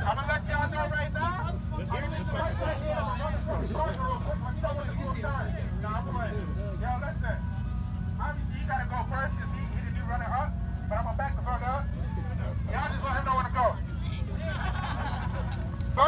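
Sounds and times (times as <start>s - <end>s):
car engine idling: 0.0s - 16.0s
crowd shouting and talking: 0.0s - 16.0s.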